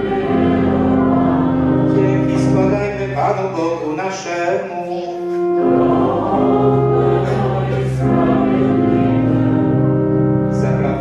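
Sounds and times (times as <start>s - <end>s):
voices singing in unison: 0.0s - 3.6s, 5.3s - 11.0s
organ accompaniment: 0.0s - 11.0s.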